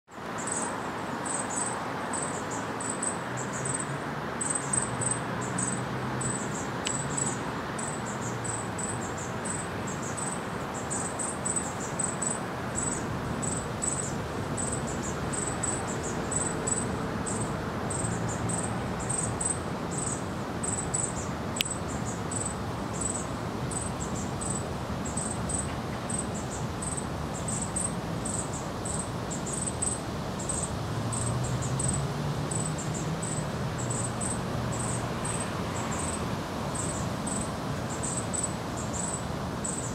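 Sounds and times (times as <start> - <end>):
insect chirping: 0.1 - 39.9
background hiss and rumble: 0.2 - 39.9.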